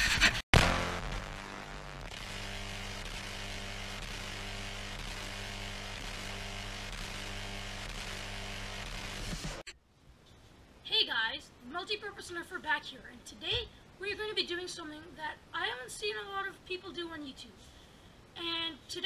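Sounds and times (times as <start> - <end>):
buzzing synth drone with pulse: 0.6 - 9.6.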